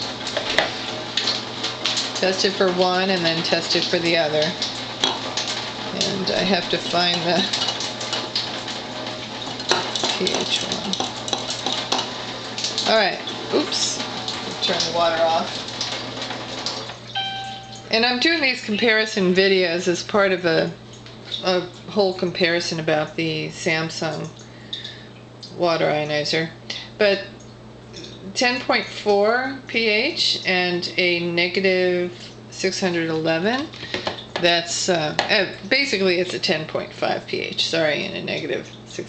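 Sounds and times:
water running hiss: 0.0s - 21.7s
low steady hum: 0.0s - 39.0s
electronic beep: 17.2s - 17.9s.

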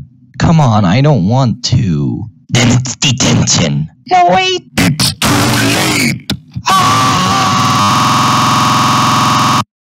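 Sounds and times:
distorted cartoon crying: 4.6s - 9.5s.

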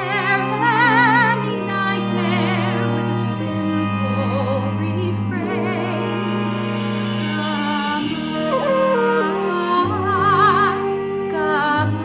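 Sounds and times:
woman singing a slow ballad: 0.0s - 6.7s, 7.3s - 12.0s
sustained instrumental backing: 0.0s - 12.0s.

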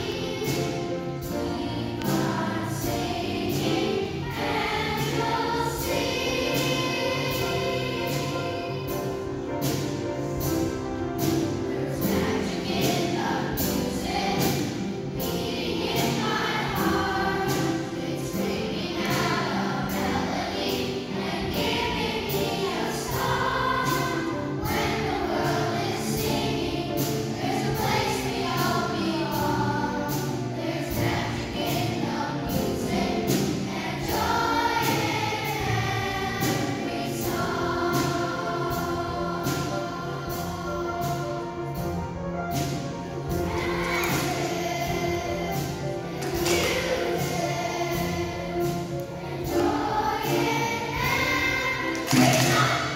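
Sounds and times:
children's choir singing: 0.0s - 52.9s
musical accompaniment: 0.0s - 52.9s.

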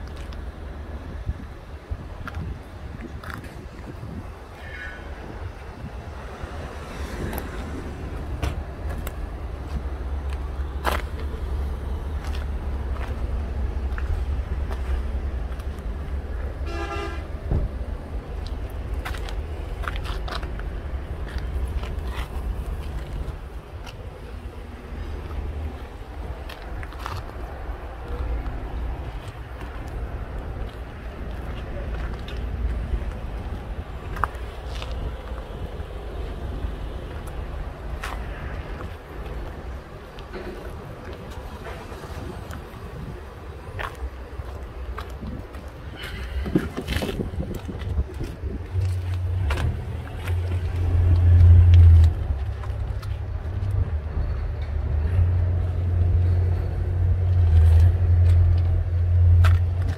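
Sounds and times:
wind rumble on microphone: 0.0s - 59.9s
vehicle horn toot: 16.6s - 17.3s.

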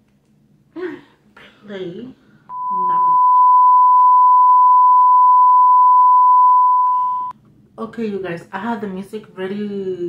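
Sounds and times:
electronic beep tone: 2.5s - 7.3s.

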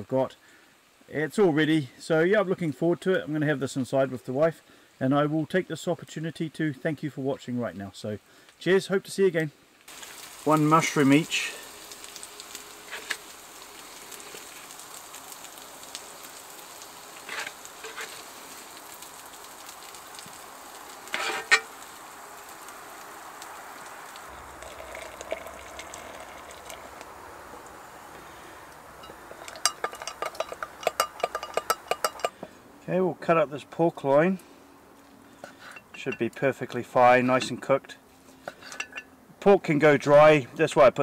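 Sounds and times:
food sizzling in a pan: 9.8s - 32.5s
metal spatula clinking and scraping: 21.1s - 21.7s, 29.0s - 32.4s, 35.4s - 36.4s, 38.4s - 39.1s.

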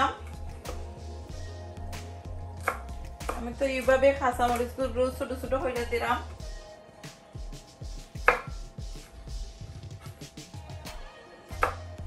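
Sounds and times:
knife chopping on wooden board: 0.2s - 0.9s, 2.0s - 3.6s, 7.8s - 10.4s, 11.5s - 11.9s.

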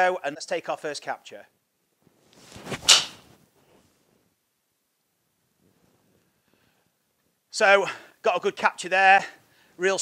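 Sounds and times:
golf club swishing: 2.1s - 3.9s
clubhead striking golf ball: 2.6s - 3.3s.

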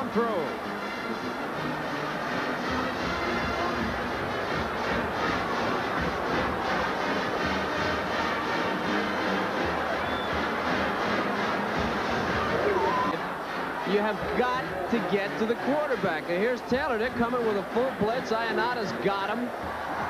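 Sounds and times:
noisy football crowd: 0.0s - 20.0s
stadium band playing music: 0.0s - 20.0s.

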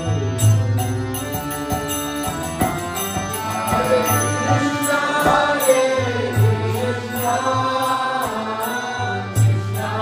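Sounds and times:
harmonium chords: 0.0s - 10.0s
chanted singing: 1.5s - 10.0s.

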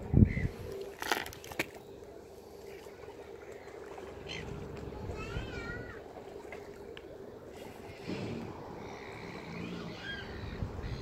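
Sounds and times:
boat engine hum: 0.0s - 11.0s
gulls calling: 2.8s - 11.0s.

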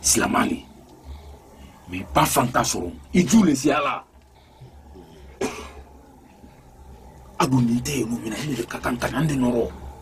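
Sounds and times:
faint low hum: 0.0s - 10.0s
man coughing: 5.2s - 5.9s.

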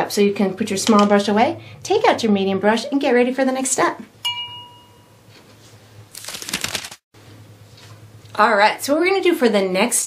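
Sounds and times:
glass clink ringing: 4.2s - 5.2s.

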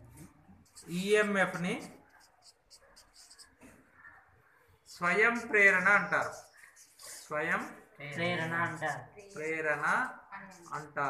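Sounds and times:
marker pen scratching on paper: 0.0s - 11.0s.

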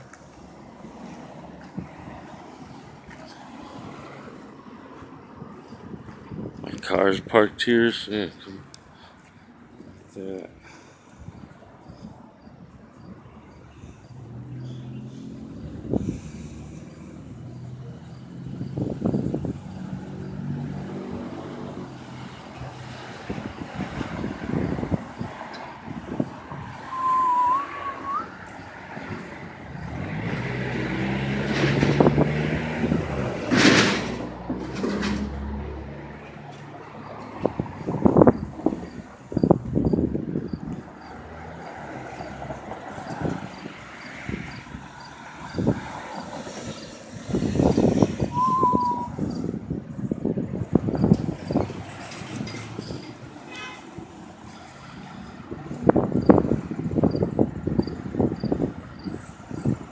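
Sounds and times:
vehicles driving past: 0.0s - 59.9s
short high chirp: 48.3s - 49.4s.

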